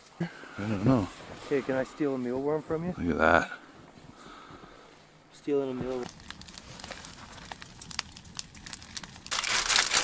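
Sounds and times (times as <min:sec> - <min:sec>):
aluminium foil crinkling: 0:05.9 - 0:10.0.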